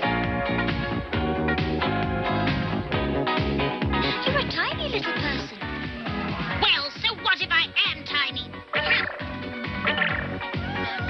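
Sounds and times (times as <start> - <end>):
upbeat background music: 0.0 - 11.0.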